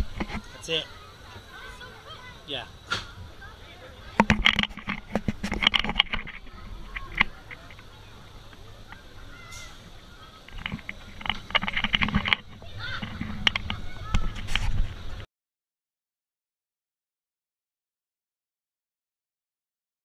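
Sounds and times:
roller coaster clattering on track: 4.1s - 15.2s.

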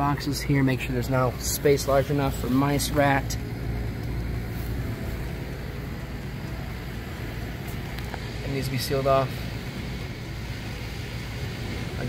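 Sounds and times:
air conditioner unit humming: 0.0s - 12.0s.

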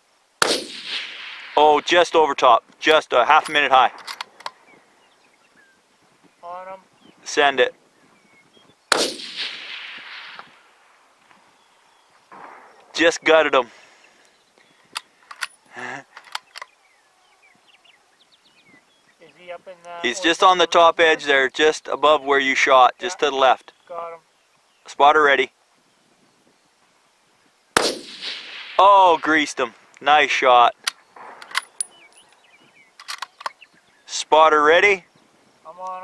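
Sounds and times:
rifle bolt clicks: 3.4s - 4.6s, 14.9s - 15.6s, 16.2s - 16.7s, 30.8s - 32.4s, 33.0s - 33.6s
faint bird chirps: 4.4s - 8.9s, 11.3s - 27.6s, 30.7s - 36.0s
faint chirps: 28.8s - 36.0s.

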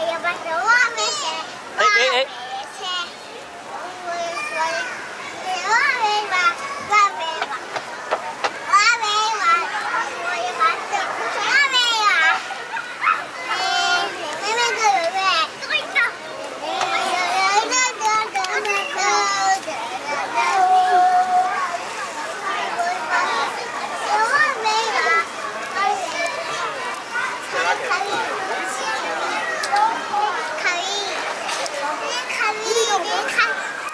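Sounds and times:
toddlers calling and babbling: 0.0s - 33.9s.

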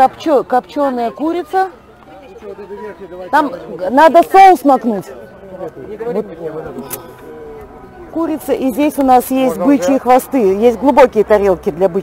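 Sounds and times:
people talking quietly: 0.0s - 12.0s.

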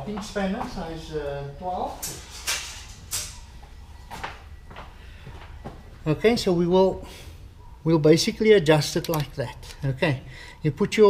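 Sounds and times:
tools knocking and clicking: 9.0s - 9.8s.

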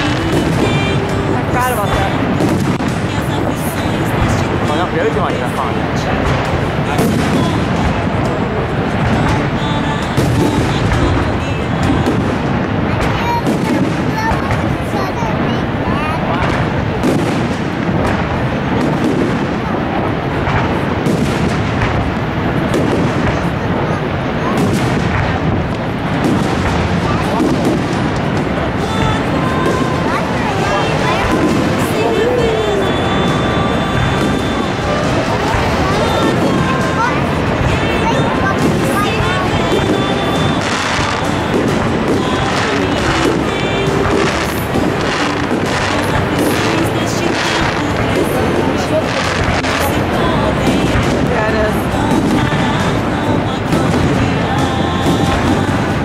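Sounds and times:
distant fireworks bursting: 0.0s - 56.0s
steady music: 15.3s - 56.0s.

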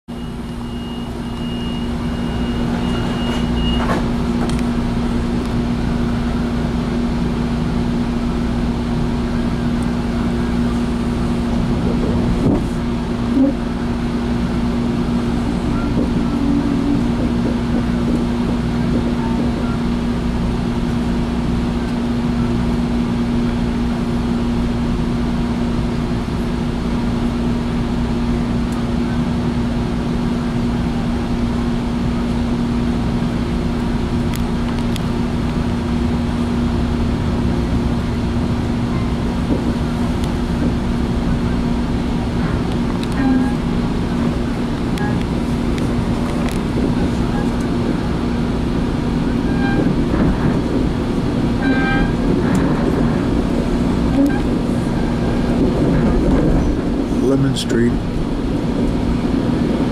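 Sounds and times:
train hum from inside car: 0.1s - 59.9s
high steady beep: 0.2s - 3.8s.

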